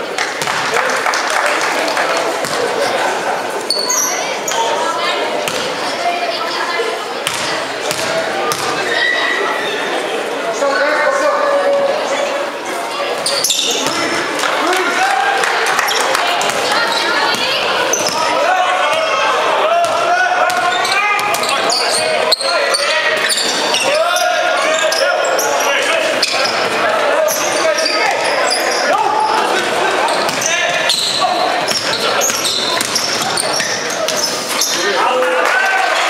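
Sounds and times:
voices of players and spectators: 0.0s - 36.0s
shoe squeaks: 3.7s - 4.7s, 13.2s - 14.0s, 16.8s - 18.3s, 20.6s - 29.4s, 30.0s - 34.9s
basketball bouncing on wooden floor: 31.6s - 34.2s.

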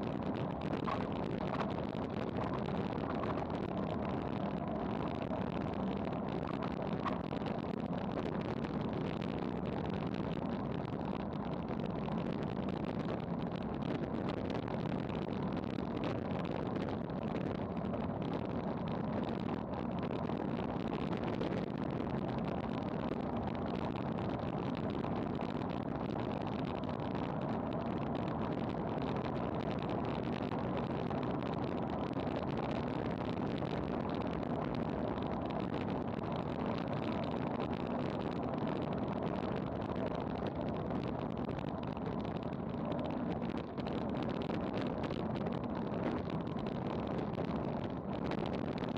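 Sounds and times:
wind roaring over microphone: 0.0s - 48.9s.

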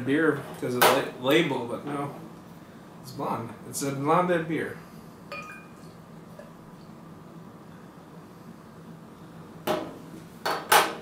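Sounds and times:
glass bottle and glasses clinking: 5.3s - 5.9s.

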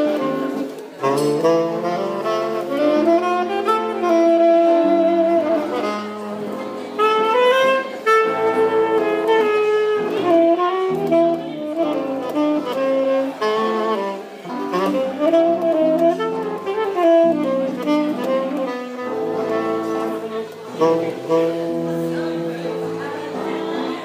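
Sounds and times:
jazz music: 0.0s - 24.0s.

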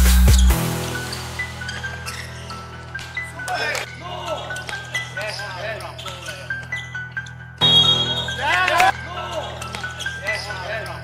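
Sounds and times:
players shouting: 7.6s - 9.6s.

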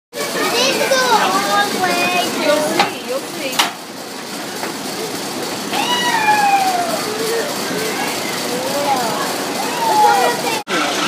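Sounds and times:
children chattering excitedly: 0.1s - 11.0s
sharp clacks: 2.7s - 4.8s
long falling call: 5.7s - 10.4s.

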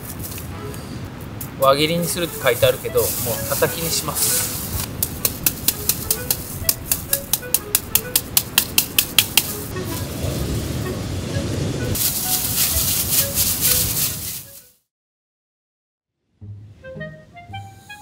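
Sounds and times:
plastic bag rustling: 2.4s - 4.9s, 12.0s - 14.7s.

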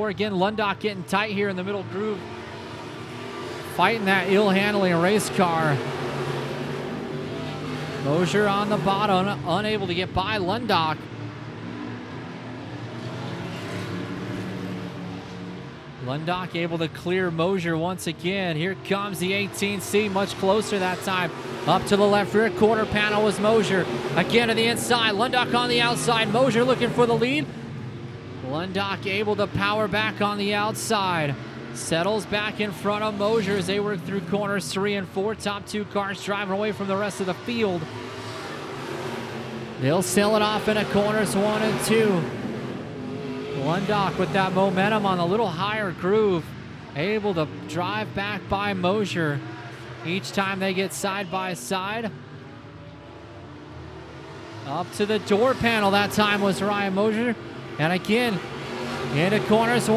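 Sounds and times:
race car engines passing: 0.0s - 59.9s.

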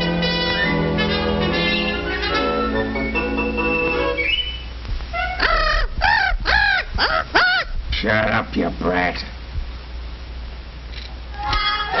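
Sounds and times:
film soundtrack hiss and hum: 0.0s - 12.0s.

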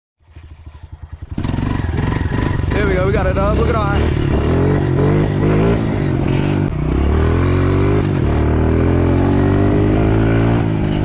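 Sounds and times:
dirt bike engine running: 0.2s - 11.0s.

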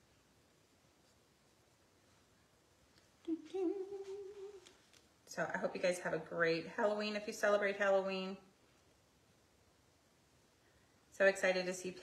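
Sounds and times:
woman humming a held note: 3.2s - 4.7s.

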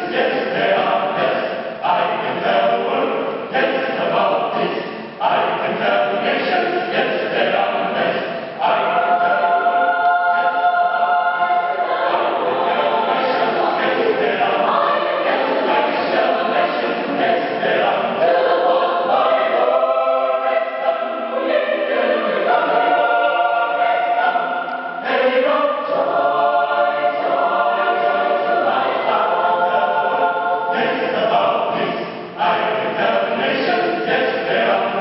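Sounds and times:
mixed choir singing a cappella: 0.0s - 35.0s.

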